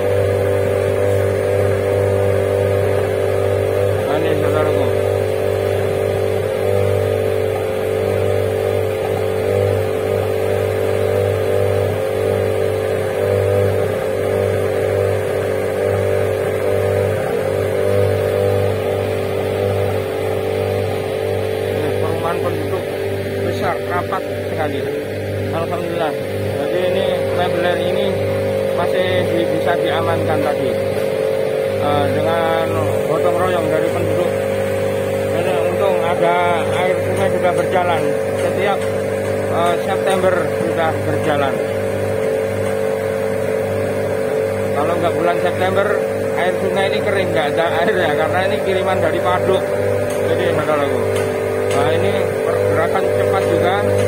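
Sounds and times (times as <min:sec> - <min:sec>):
fire engine motor droning: 0:00.0 - 0:54.0.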